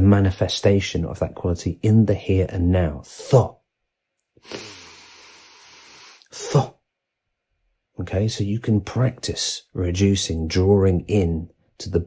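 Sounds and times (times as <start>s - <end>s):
man's long hissing breath: 4.4s - 6.4s
short sharp vocal burst: 4.4s - 6.8s.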